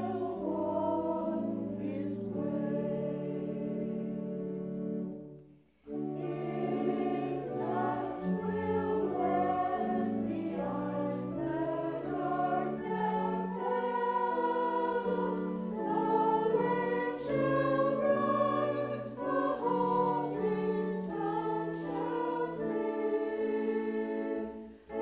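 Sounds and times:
church choir singing: 0.0 - 25.0.

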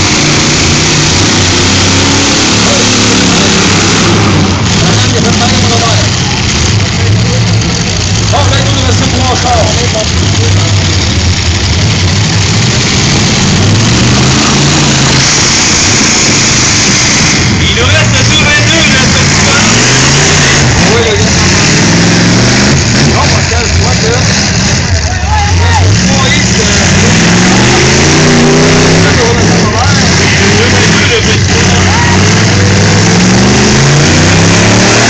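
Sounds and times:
car engines revving hard: 0.0 - 35.0
steady roar of noise: 9.4 - 35.0.

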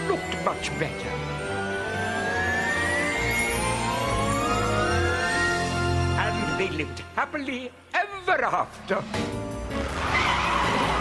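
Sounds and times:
background music: 0.0 - 11.0
cartoon car skidding away: 9.7 - 11.0.

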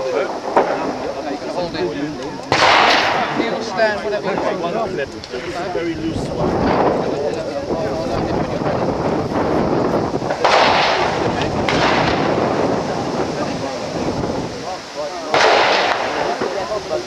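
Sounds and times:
rifle shots: 2.5 - 3.5, 10.4 - 12.6, 15.3 - 16.6.

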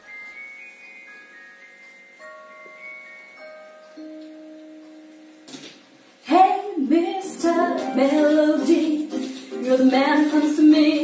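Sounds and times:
bell-like chime notes: 0.0 - 5.2.

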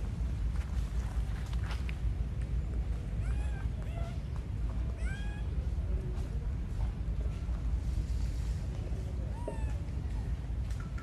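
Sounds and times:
monkey meow-like cries: 3.2 - 4.2, 5.0 - 5.5.

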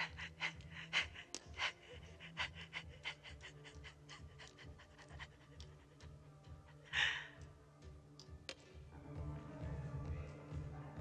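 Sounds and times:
woman panting and sobbing: 0.0 - 7.6.

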